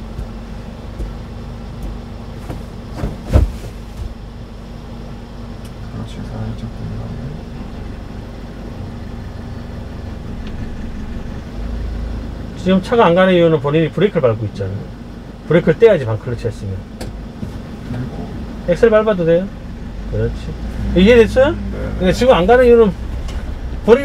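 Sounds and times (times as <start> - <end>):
truck engine running: 0.0 - 24.0
sharp thump: 1.8 - 4.2.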